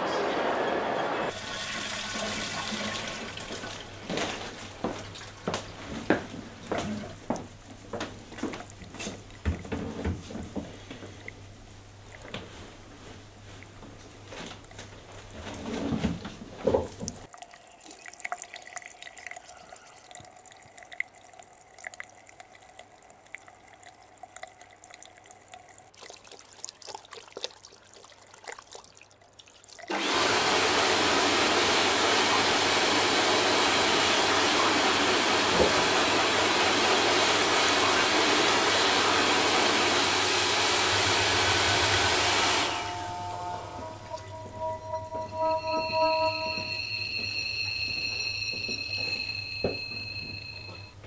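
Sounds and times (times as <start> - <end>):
low hum: 42.7 - 50.9
soft music tones: 42.8 - 50.8.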